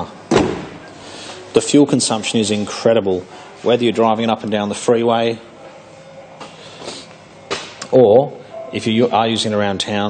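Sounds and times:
faint breath: 0:01.0 - 0:01.5, 0:06.4 - 0:07.2
man speaking: 0:01.5 - 0:05.6, 0:07.8 - 0:10.0.

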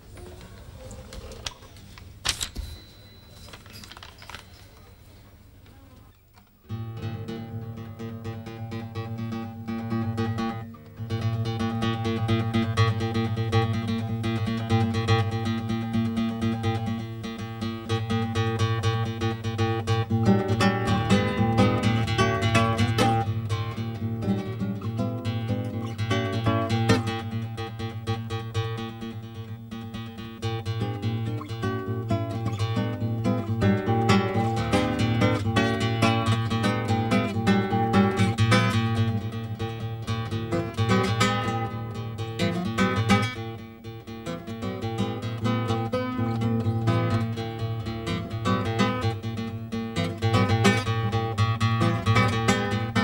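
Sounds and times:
classical guitar playing: 0:05.4 - 0:53.0.

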